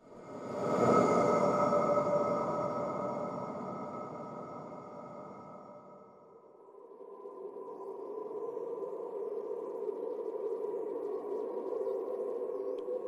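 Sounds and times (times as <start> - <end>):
eerie ambient drone: 0.0 - 13.0.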